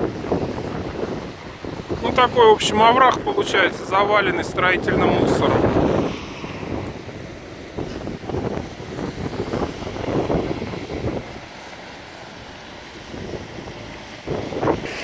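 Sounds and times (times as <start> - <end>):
street noise: 0.0 - 15.0
wind buffeting microphone: 0.0 - 15.0.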